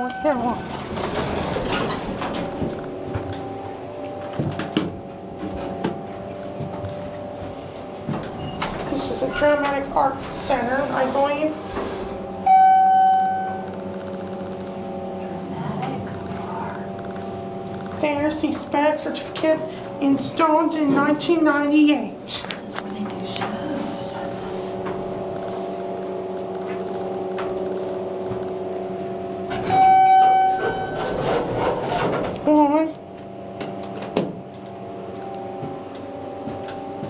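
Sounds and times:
electronic arrival tone: 0:00.0 - 0:01.0, 0:02.2 - 0:08.9, 0:12.2 - 0:18.2, 0:24.1 - 0:31.0
elevator chime ding: 0:00.0 - 0:21.5, 0:29.2 - 0:31.2
elevator hum: 0:00.0 - 0:37.0.

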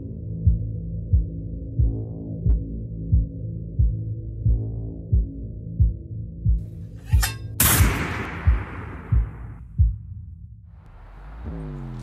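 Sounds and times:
heartbeat-like thuds: 0:07.6 - 0:10.4.

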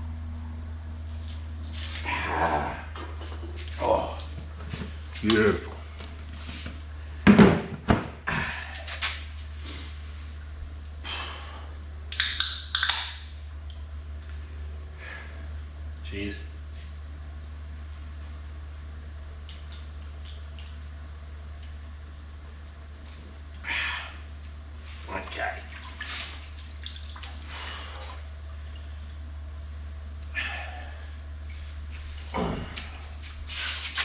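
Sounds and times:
low hum: 0:00.0 - 0:34.0
water splashing: 0:25.2 - 0:28.2.

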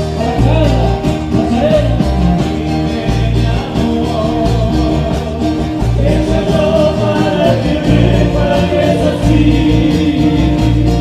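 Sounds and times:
low bass line: 0:00.0 - 0:11.0
male group singing in harmony: 0:00.0 - 0:11.0
strummed acoustic guitars: 0:00.0 - 0:11.0.

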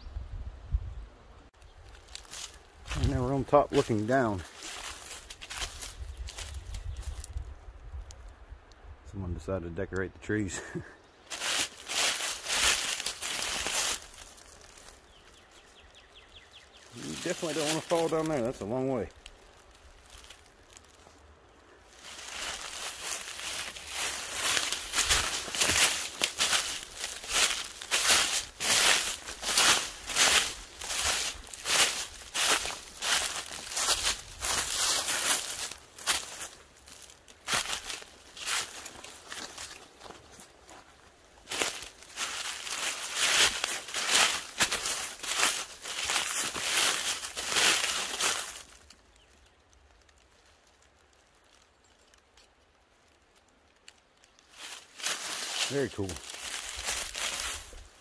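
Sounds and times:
footsteps crunching dry leaves: 0:01.6 - 0:07.5, 0:10.6 - 0:58.0.

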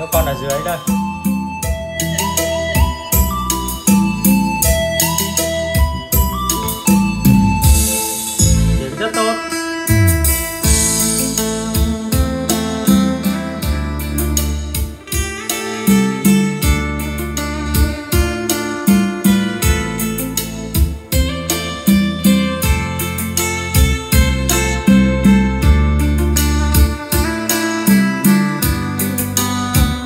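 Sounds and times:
music with guitar and bass: 0:00.0 - 0:30.0.

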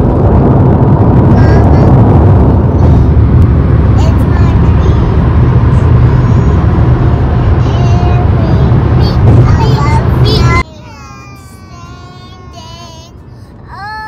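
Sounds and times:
car road and wind rumble: 0:00.0 - 0:14.0.

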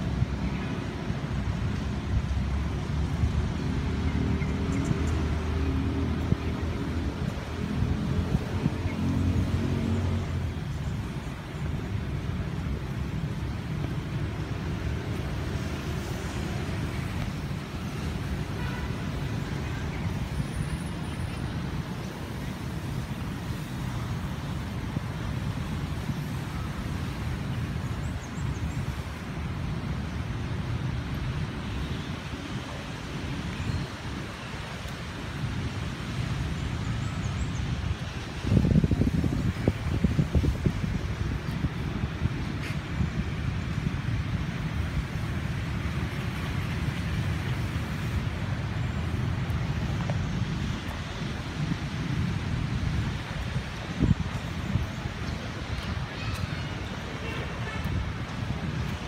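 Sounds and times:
distant road traffic rumble: 0:00.0 - 0:59.0
wind buffeting microphone: 0:32.2 - 0:59.0.

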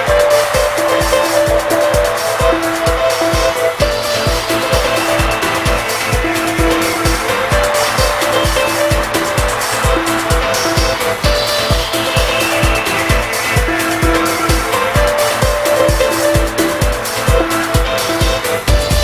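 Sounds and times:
house dance music: 0:00.0 - 0:19.0.

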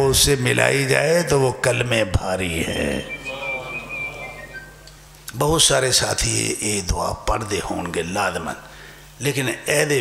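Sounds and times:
high whistling tone: 0:02.6 - 0:04.9.

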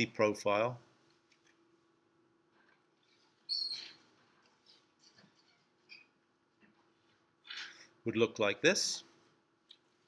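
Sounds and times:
high-pitched squeak: 0:03.5 - 0:04.0.

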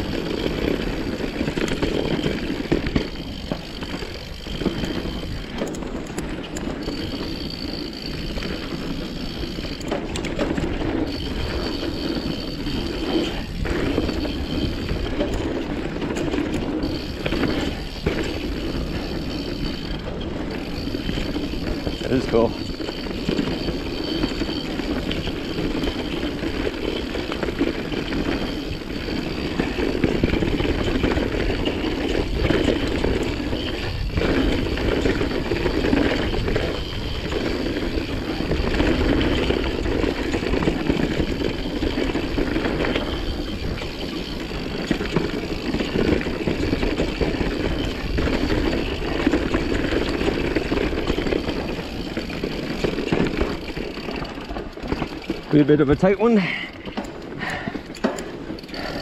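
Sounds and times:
bike knocking over trail: 0:00.0 - 0:59.0
bike tyres on dirt trail: 0:00.0 - 0:59.0.

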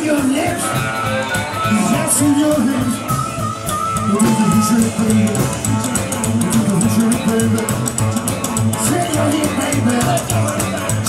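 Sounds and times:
drum kit beat: 0:00.0 - 0:11.0
electric guitar: 0:00.0 - 0:11.0
upright bass walking: 0:00.0 - 0:11.0
harmonica: 0:00.4 - 0:11.0.

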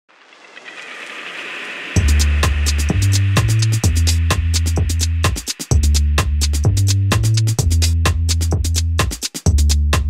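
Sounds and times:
noise riser hiss: 0:00.1 - 0:06.6
loud music with heavy beat: 0:01.9 - 0:10.0.

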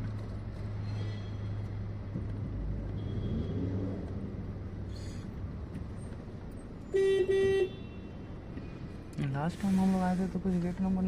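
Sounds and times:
car horn tooting: 0:06.9 - 0:08.2.

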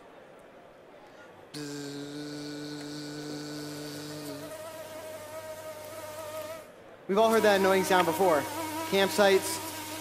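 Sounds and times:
mosquito whine: 0:01.6 - 0:06.7.

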